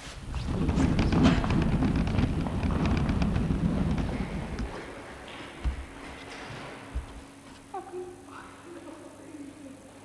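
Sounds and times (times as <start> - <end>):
footsteps on hard floor: 3.9 - 7.7.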